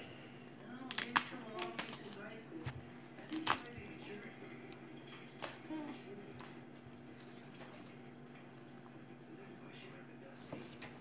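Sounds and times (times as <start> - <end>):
diaper rustling: 0.8 - 4.3.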